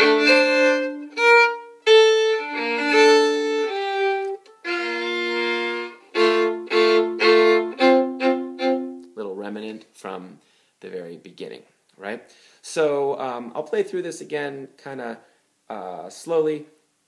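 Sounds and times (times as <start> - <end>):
solo violin bowed: 0.0 - 9.1.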